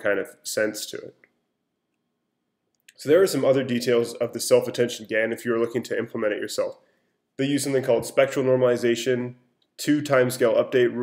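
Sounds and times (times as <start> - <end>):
person speaking: 0.0 - 1.4, 2.8 - 11.0.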